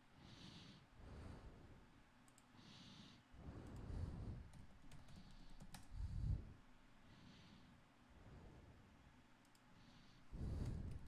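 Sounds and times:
typing on computer keyboard: 0:04.5 - 0:05.9.

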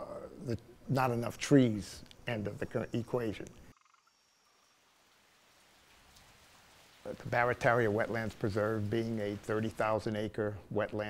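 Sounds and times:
faint outdoor ambience hiss: 0:00.0 - 0:11.0.

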